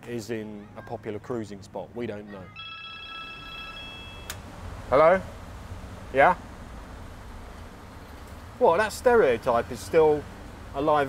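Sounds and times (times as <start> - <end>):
low street hum: 0.0 - 11.0
telephone ringing: 2.5 - 4.4.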